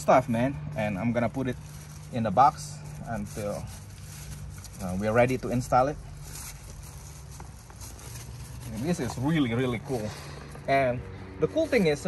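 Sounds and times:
plastic packaging rustling: 0:00.7 - 0:10.9.

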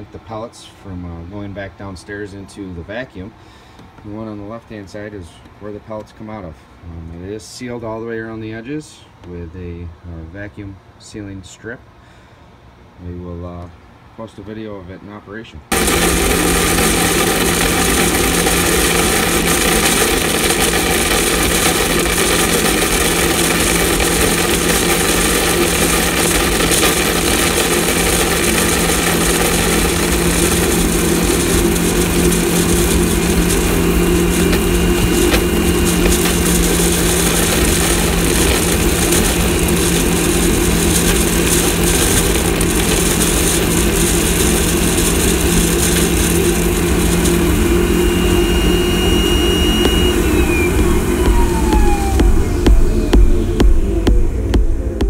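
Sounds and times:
wood pellets rattling: 0:15.7 - 0:52.2
vacuum motor running: 0:15.7 - 0:55.0.

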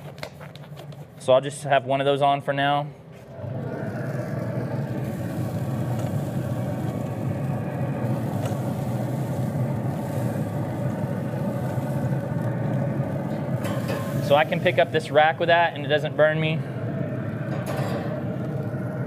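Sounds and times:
grill fan and fire humming: 0:00.0 - 0:19.0.

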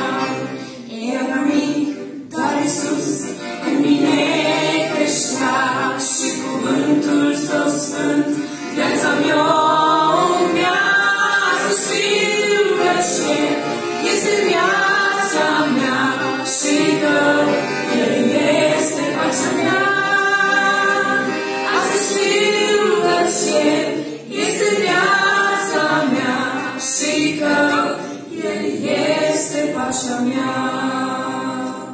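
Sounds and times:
accordion: 0:00.0 - 0:31.9
women singing a hymn in harmony: 0:00.0 - 0:31.9.

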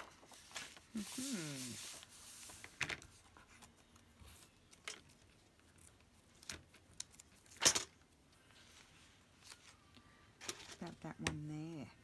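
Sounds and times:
paper rustling: 0:00.0 - 0:07.5.

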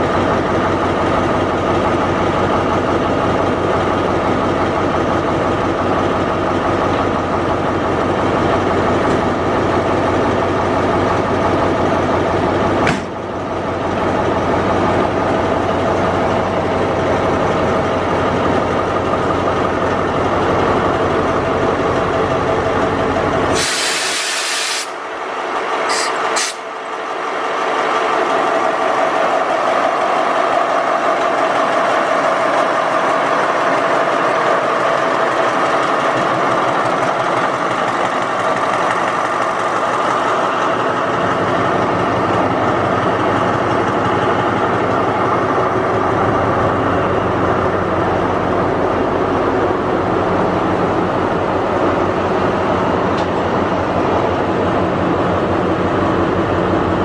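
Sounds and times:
locomotive engine idling: 0:00.0 - 0:23.6, 0:25.4 - 0:57.0
compressed air hissing: 0:23.5 - 0:25.0, 0:25.9 - 0:26.6.

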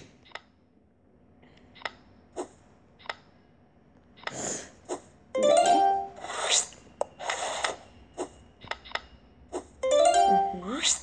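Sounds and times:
short game sound effect: 0:05.4 - 0:06.4.

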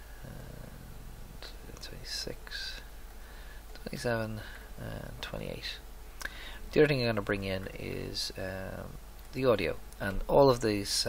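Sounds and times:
man humming hesitantly: 0:00.2 - 0:02.1
short breathy hiss: 0:06.2 - 0:06.7.

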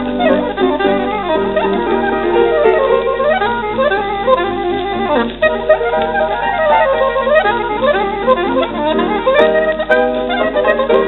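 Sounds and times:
piano accompaniment: 0:00.0 - 0:11.0
saxophone fast runs: 0:00.0 - 0:11.0.

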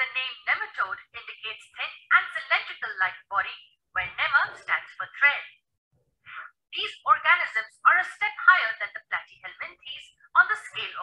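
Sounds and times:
narrator talking: 0:00.0 - 0:05.5, 0:06.3 - 0:11.0.

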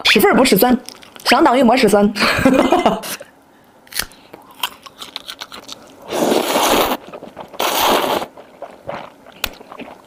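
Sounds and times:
food crunch: 0:03.9 - 0:10.0
loud slurp of noodles: 0:06.1 - 0:08.4.

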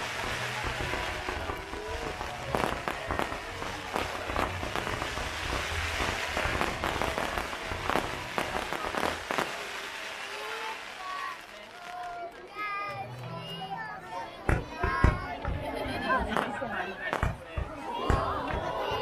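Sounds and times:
fireworks bangs and crackles: 0:00.0 - 0:12.6, 0:14.4 - 0:19.0
fizz of burning sparks: 0:00.0 - 0:12.7.

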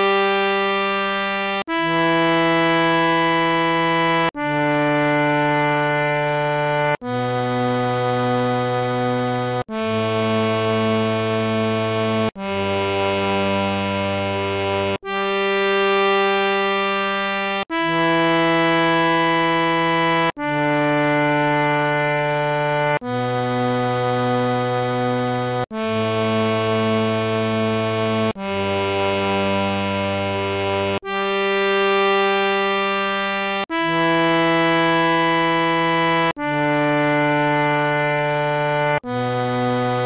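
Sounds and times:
harmonium playing long held notes: 0:00.0 - 0:40.0.

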